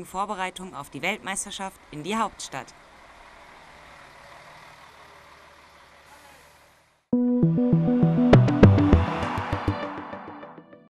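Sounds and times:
bus diesel engine running: 0.0s - 7.1s
outdoor noise: 0.0s - 7.1s.

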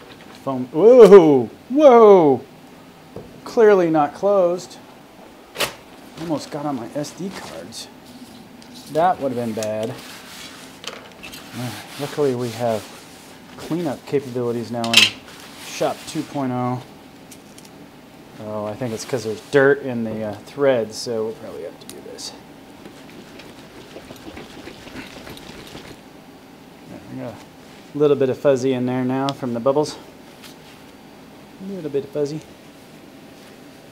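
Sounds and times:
paper towel rubbing on wood: 8.8s - 10.8s, 11.4s - 14.5s, 22.8s - 26.0s.

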